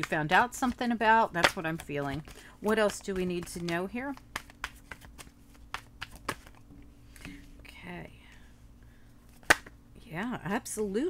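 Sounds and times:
faint steady hum: 0.0s - 11.0s
cards snapping and tapping: 1.4s - 6.6s, 9.4s - 9.7s.

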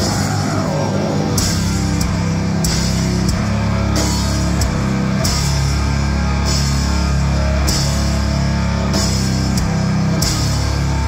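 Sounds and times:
distorted electric guitar and bass: 0.0s - 11.0s
drum kit: 0.0s - 11.0s.

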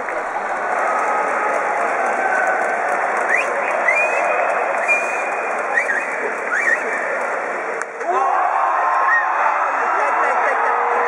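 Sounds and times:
stadium crowd applauding and cheering: 0.0s - 11.0s.

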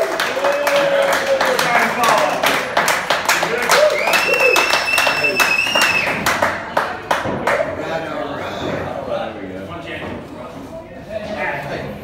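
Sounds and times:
audience clapping and cheering: 0.0s - 7.7s.

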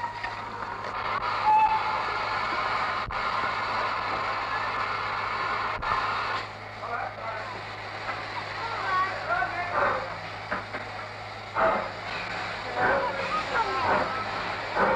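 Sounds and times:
steam hissing: 0.0s - 14.9s
steam locomotive whistle: 1.4s - 2.2s.

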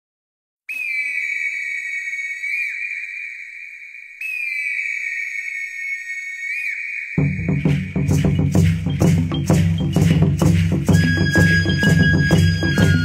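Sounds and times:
high whistle notes: 0.7s - 13.0s.

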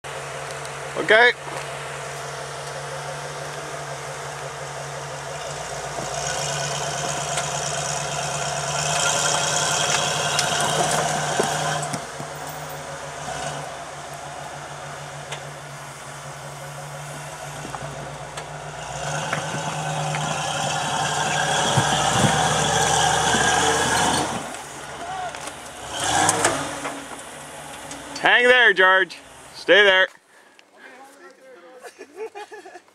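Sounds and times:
buggy engine revving under load: 0.0s - 29.6s.

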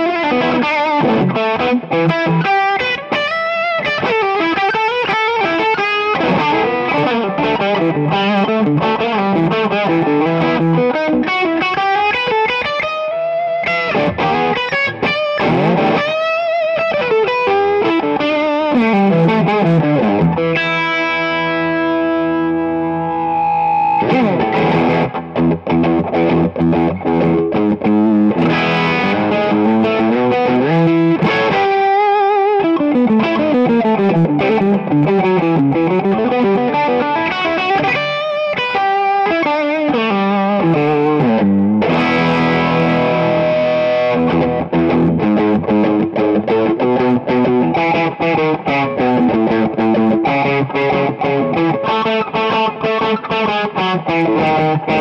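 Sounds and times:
distorted electric guitar solo: 0.0s - 55.0s.

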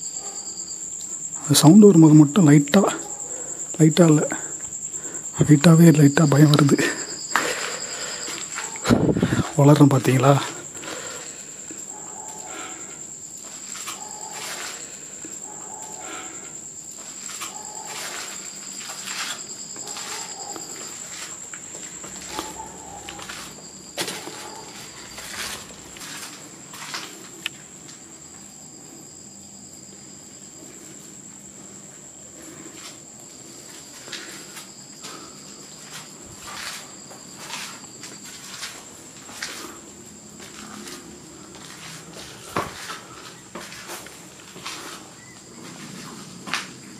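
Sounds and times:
cricket trilling: 0.0s - 46.9s
footsteps on concrete and grit: 7.3s - 9.2s, 13.4s - 15.0s, 16.9s - 28.4s, 32.4s - 46.9s.

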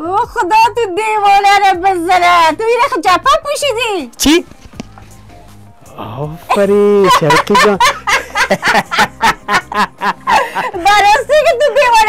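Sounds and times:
man talking: 5.9s - 7.9s
man laughing: 6.5s - 10.8s.

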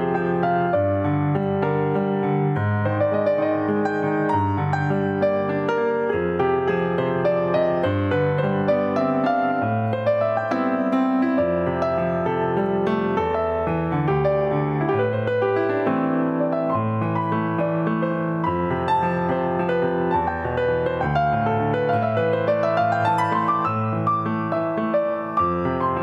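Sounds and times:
solo piano music: 0.0s - 26.0s.

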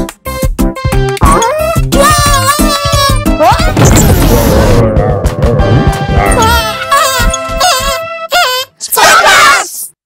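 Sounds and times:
background music: 0.0s - 8.9s
cartoon crash: 3.7s - 6.7s.

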